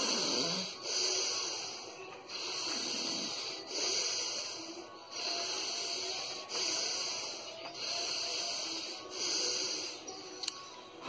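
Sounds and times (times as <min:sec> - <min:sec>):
man breathing forcefully through nose: 0:00.0 - 0:10.2.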